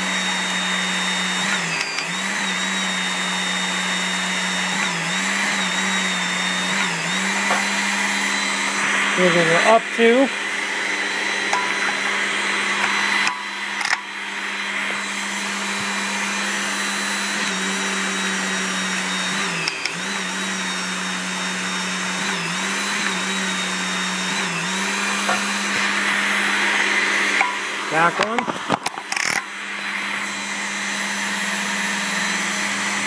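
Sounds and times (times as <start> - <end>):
hydraulic pump motor humming: 0.0 - 33.0.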